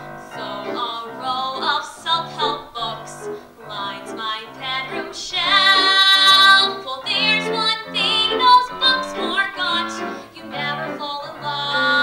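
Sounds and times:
piano accompaniment: 0:00.0 - 0:12.0
woman singing into microphone: 0:00.0 - 0:12.0.

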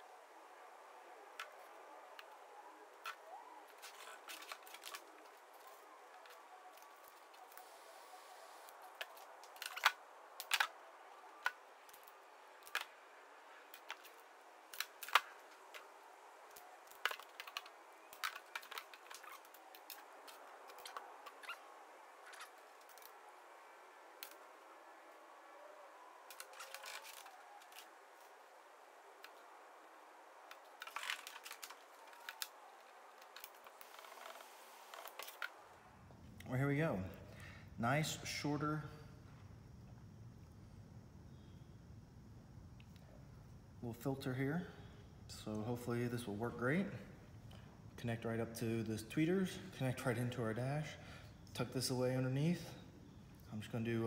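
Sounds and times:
faint hiss: 0:00.0 - 0:54.0.

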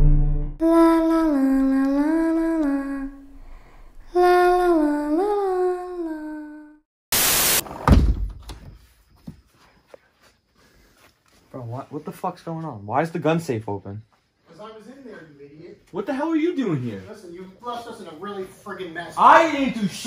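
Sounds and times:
girl humming: 0:00.6 - 0:06.8
burst of static noise: 0:07.1 - 0:08.0.

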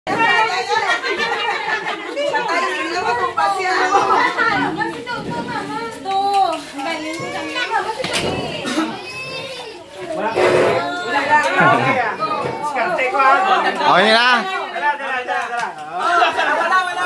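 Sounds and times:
children's voices: 0:00.1 - 0:13.8
people talking and calling out: 0:00.1 - 0:17.0.

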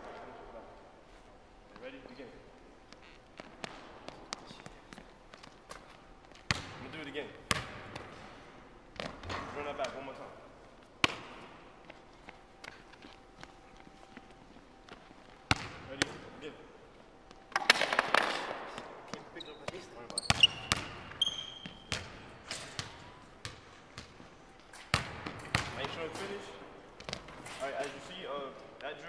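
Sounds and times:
basketball bouncing on hardwood floor: 0:07.5 - 0:08.2.

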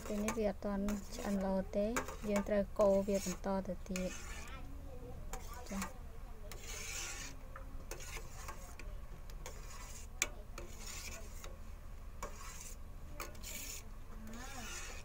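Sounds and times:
ladle scraping steel pot: 0:00.0 - 0:04.6, 0:05.3 - 0:11.6, 0:12.2 - 0:15.0.

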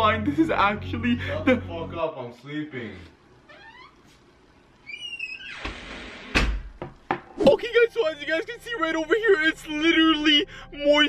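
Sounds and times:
door creaking on hinges: 0:03.4 - 0:07.1.

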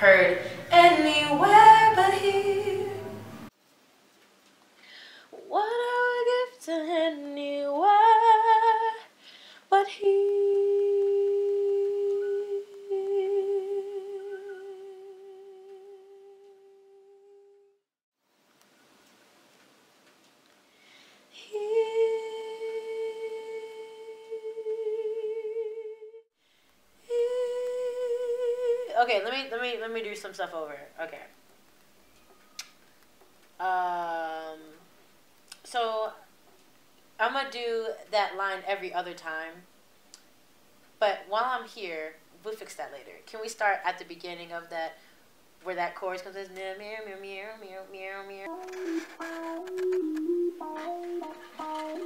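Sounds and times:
woman humming: 0:10.2 - 0:17.6.

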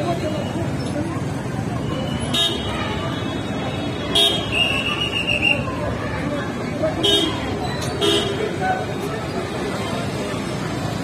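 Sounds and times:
people's voices: 0:00.0 - 0:11.0
road traffic: 0:00.0 - 0:11.0
vehicle horns honking: 0:04.1 - 0:04.7, 0:08.0 - 0:08.4.

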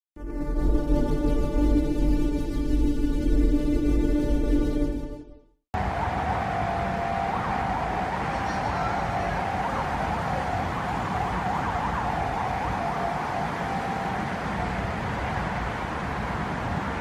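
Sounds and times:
road traffic rushing: 0:05.8 - 0:17.0
high wavering tone: 0:06.6 - 0:15.1.

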